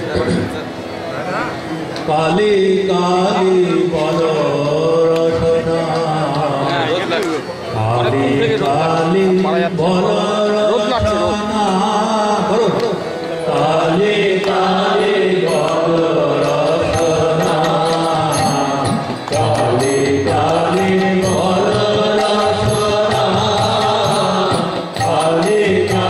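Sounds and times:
harmonium: 0.0 - 26.0
chanted singing: 2.0 - 26.0.

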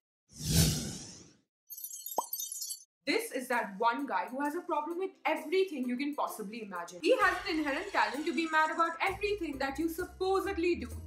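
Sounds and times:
whoosh: 0.4 - 1.3.

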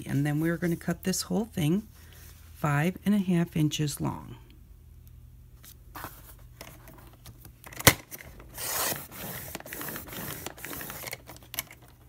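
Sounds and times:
paper trimmer blade scraping: 8.5 - 11.2.

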